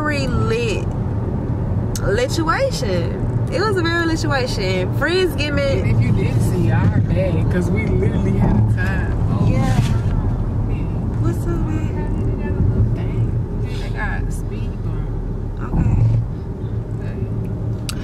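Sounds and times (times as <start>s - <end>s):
moving car rumble: 0.0s - 18.0s
voices: 2.0s - 16.2s.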